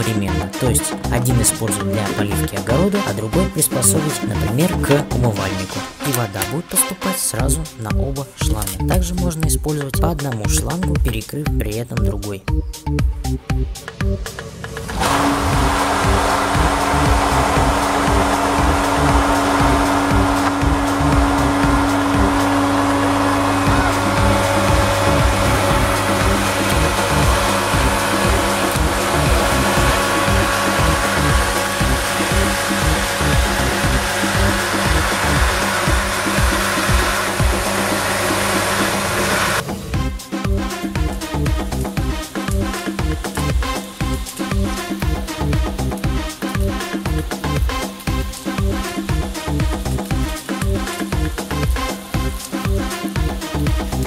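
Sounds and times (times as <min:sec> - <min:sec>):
electric pump motor whine: 0:14.8 - 0:54.0.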